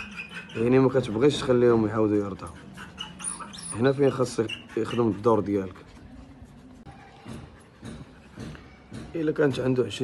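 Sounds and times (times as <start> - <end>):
faint dog sounds: 0.0 - 9.9.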